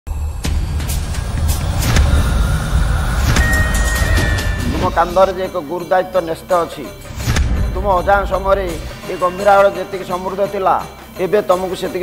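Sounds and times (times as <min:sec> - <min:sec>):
deep rumbling drone: 0:00.1 - 0:05.3
sudden dramatic hits: 0:00.1 - 0:05.4
high held tone: 0:01.9 - 0:05.8.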